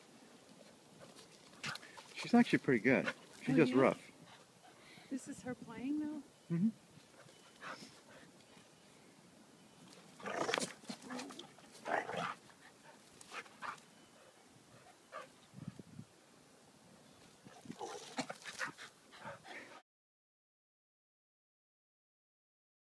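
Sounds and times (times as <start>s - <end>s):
dogs playing and scuffling: 0.5s - 5.2s, 7.0s - 8.7s, 9.8s - 15.8s, 17.2s - 19.8s.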